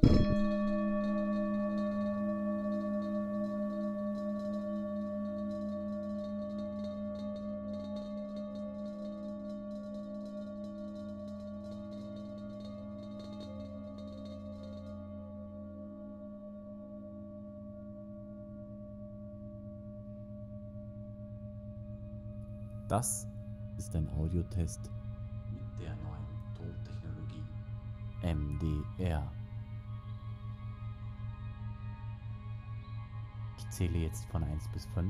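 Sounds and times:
singing bowl ringing: 0.0 - 26.5.

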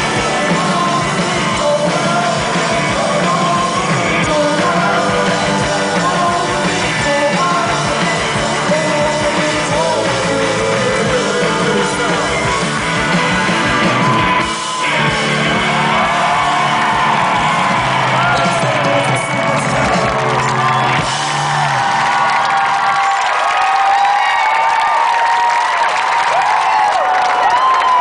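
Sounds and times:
live rock band playing: 0.0 - 23.3
crowd cheering: 0.0 - 28.0
crowd whistling: 11.2 - 28.0.

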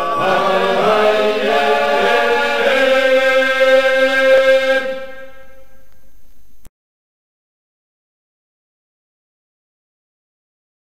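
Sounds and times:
choir singing a cappella: 0.0 - 5.8.

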